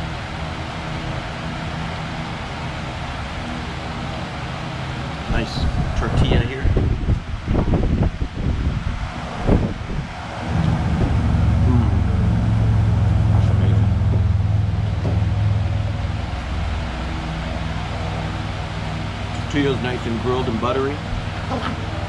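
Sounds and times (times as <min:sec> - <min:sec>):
passing road vehicle rumble: 0:00.0 - 0:22.0.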